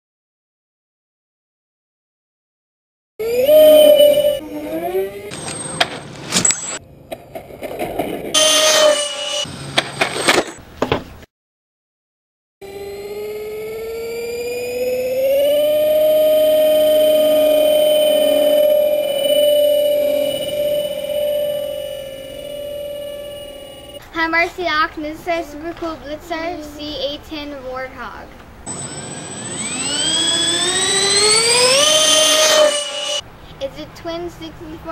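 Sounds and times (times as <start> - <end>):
electric motors whining: 3.2 - 6.8, 8.4 - 10.5, 12.6 - 24.0, 28.7 - 33.2.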